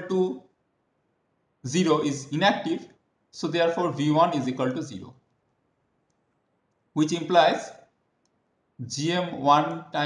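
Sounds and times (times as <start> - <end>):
man speaking: 0.0 - 0.5, 1.6 - 5.2, 7.0 - 7.9, 8.8 - 10.0
faint click: 8.2 - 8.4.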